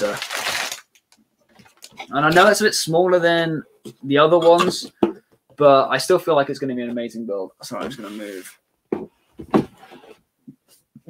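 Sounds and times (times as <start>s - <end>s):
plastic bag crinkling: 0.0s - 2.1s
man speaking: 2.1s - 5.0s, 5.6s - 8.5s.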